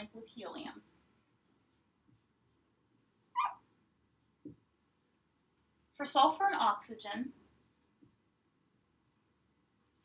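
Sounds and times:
marker squeaking on whiteboard: 0:03.1 - 0:03.7.

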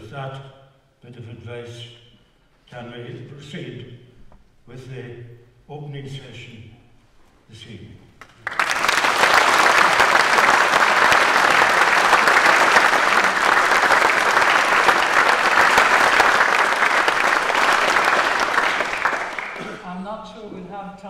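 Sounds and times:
audience applauding: 0:08.2 - 0:19.8.

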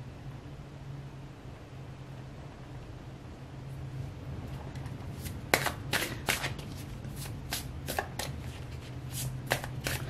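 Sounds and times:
low steady hum: 0:00.0 - 0:10.0
cards shuffling: 0:04.8 - 0:10.0.

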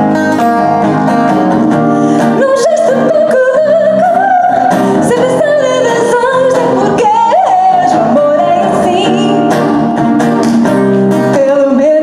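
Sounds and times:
strummed acoustic guitar: 0:00.0 - 0:12.0
woman singing: 0:02.2 - 0:09.8, 0:11.3 - 0:12.0.

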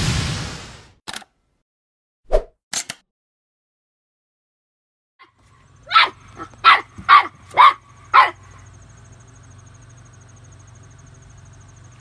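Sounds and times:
puppy barking: 0:05.2 - 0:08.7.

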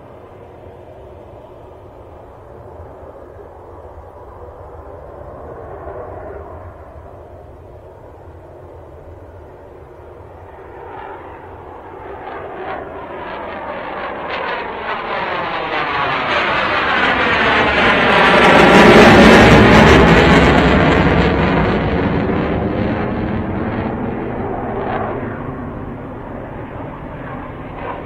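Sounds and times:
jet engines rumbling on take-off: 0:00.0 - 0:28.0.

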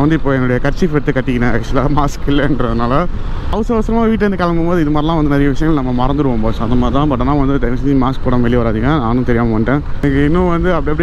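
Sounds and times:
man talking: 0:00.0 - 0:11.0
wind: 0:00.0 - 0:11.0.

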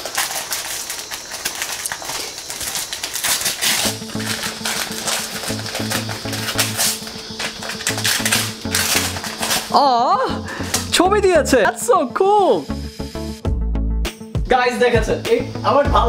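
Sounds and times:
wrapping paper tearing: 0:00.0 - 0:10.9
background music with bass line: 0:08.0 - 0:16.0.

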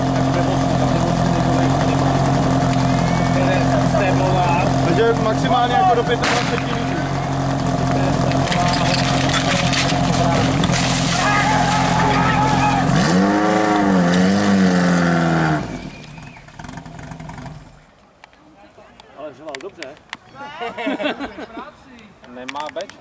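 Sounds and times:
pump engine running at high revs: 0:00.0 - 0:17.7
people shouting: 0:11.1 - 0:13.2.

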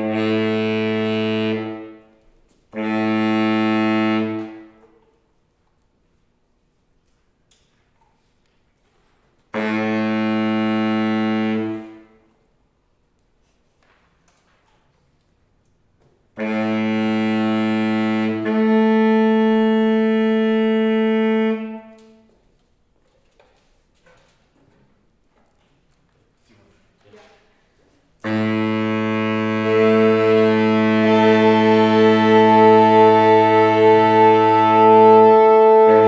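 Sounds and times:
saxophones holding one note: 0:00.0 - 0:02.0, 0:02.7 - 0:04.8, 0:09.5 - 0:12.1, 0:16.4 - 0:22.0, 0:28.2 - 0:36.0.

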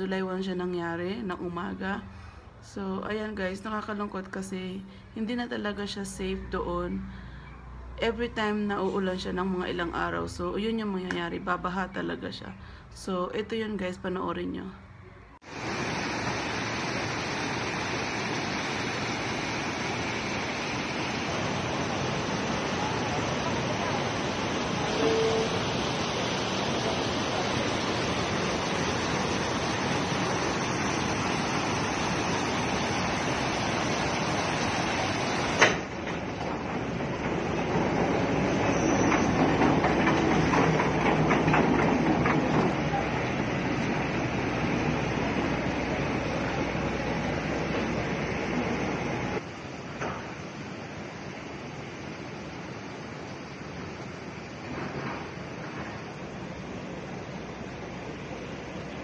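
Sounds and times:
floodwater rushing over rocks: 0:15.5 - 0:36.0.

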